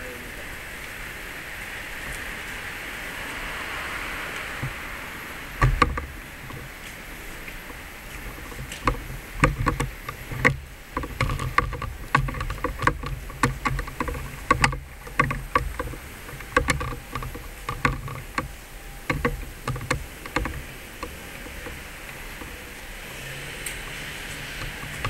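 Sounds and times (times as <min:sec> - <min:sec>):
footsteps: 0:02.0 - 0:25.0.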